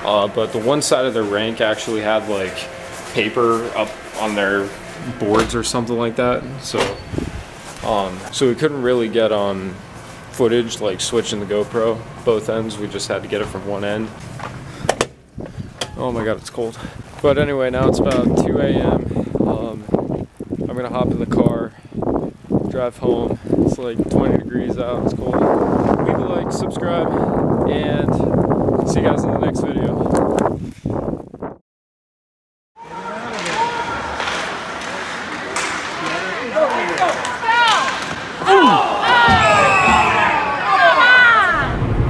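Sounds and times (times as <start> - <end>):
echoing voices in ice rink: 0.0 - 6.8, 7.5 - 14.9, 32.8 - 41.8
wind on microphone: 0.0 - 8.0, 14.1 - 31.6, 41.5 - 42.0
hockey play noise: 0.0 - 18.4, 32.8 - 41.7
microphone handling noise: 6.7 - 8.3, 25.0 - 31.6.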